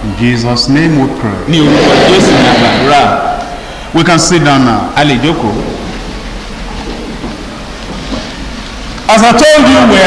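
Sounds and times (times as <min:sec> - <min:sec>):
congregation rustling and shuffling: 0:01.5 - 0:10.0.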